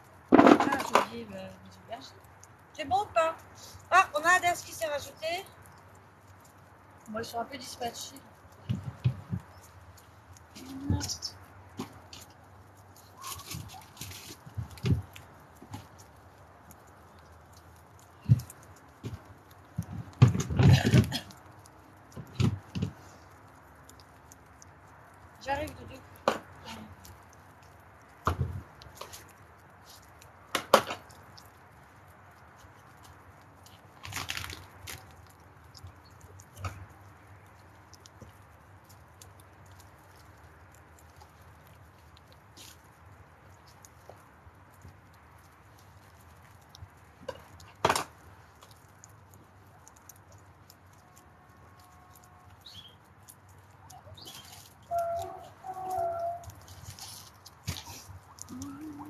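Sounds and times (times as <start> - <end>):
guinea pigs crunching vegetables: 0.0 - 59.0.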